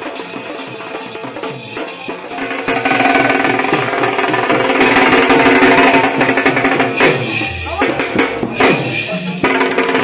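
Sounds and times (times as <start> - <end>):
drums beaten with sticks: 0.0 - 10.0.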